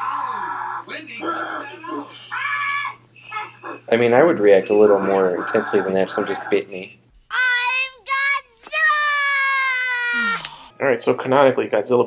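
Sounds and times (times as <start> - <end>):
girl screaming: 7.3 - 10.5.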